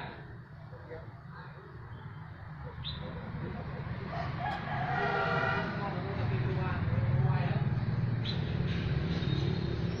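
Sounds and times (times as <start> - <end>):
drawn-out pitched call: 1.5 - 5.9.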